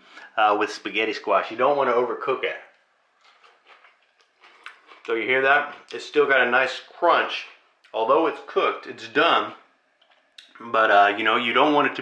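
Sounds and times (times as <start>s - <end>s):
chewing crunch: 3.2s - 5.1s.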